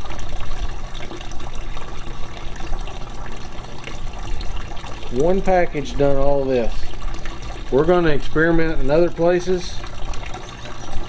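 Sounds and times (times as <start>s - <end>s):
water running and trickling: 0.0s - 11.0s.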